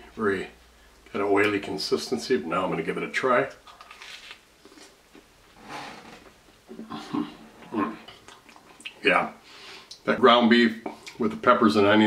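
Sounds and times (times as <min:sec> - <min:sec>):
crisp crunch: 0:03.6 - 0:05.0
person chewing sandwich: 0:03.6 - 0:05.2.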